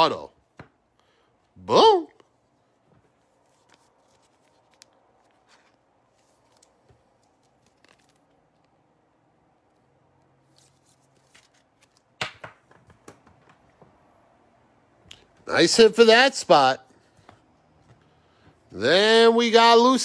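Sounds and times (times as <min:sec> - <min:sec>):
cards rustling: 0:02.8 - 0:08.9, 0:10.2 - 0:13.7.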